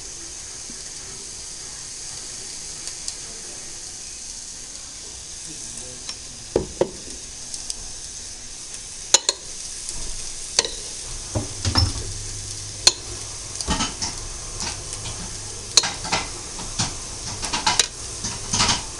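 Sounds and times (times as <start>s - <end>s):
cutlery clinking on a dish: 13.7s - 18.9s.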